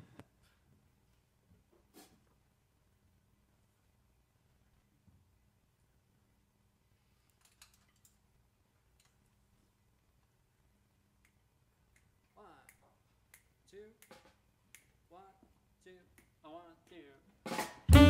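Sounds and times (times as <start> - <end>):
finger snaps: 11.2 - 15.0
jazz blues band playing: 17.5 - 18.0.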